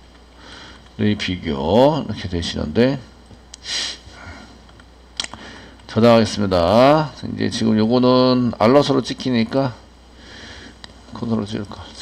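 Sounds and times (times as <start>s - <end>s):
nose sniff: 3.6s - 4.1s.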